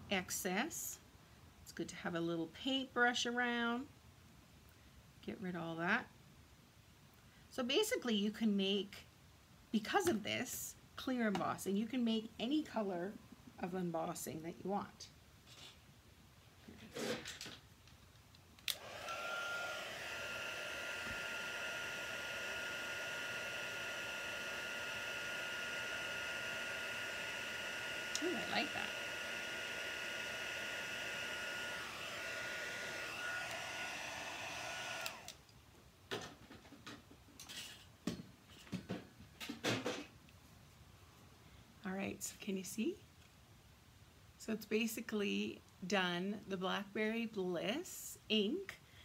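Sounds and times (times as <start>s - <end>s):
heat tool blowing with whine: 18.7s - 35.4s.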